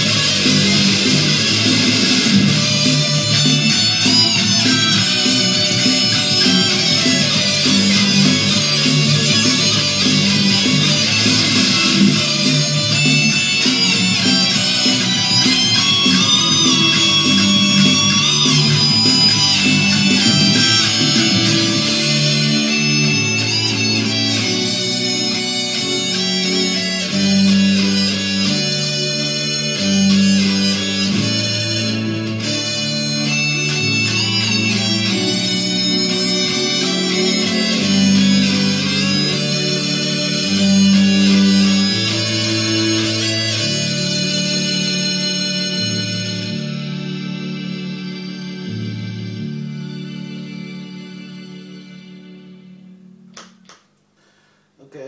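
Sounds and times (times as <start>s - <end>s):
held bass notes: 0.0s - 53.7s
harmonized electric guitar lead: 0.0s - 54.5s
rock backing track: 0.0s - 54.5s.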